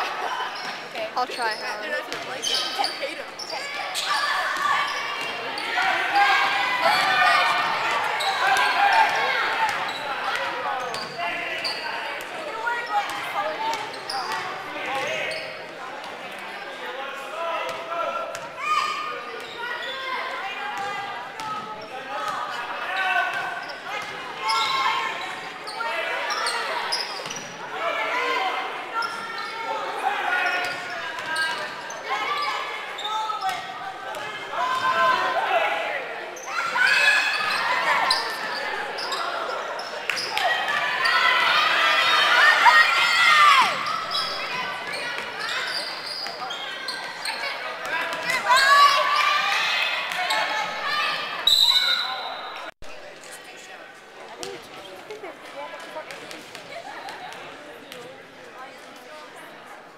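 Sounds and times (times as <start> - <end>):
voices echoing in hall: 0.0 - 59.9.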